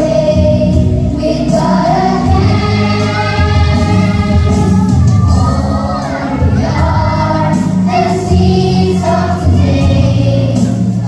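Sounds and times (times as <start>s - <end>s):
accompanying music: 0.0s - 11.0s
children singing together: 0.0s - 11.0s.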